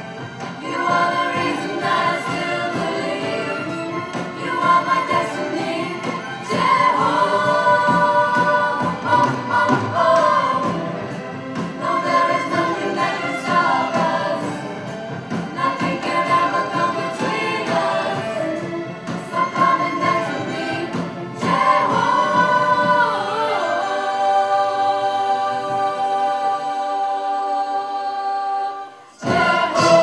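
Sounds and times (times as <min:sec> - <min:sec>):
choir singing: 0:00.0 - 0:30.0
string orchestra: 0:00.0 - 0:30.0.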